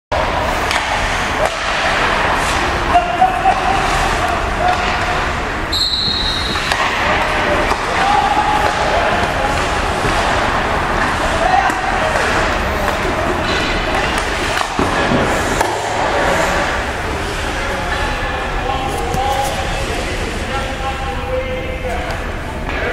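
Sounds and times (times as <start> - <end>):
distant voices in arena: 0.1 - 22.9
pucks cracking off sticks and boards: 0.2 - 5.5, 6.4 - 18.1.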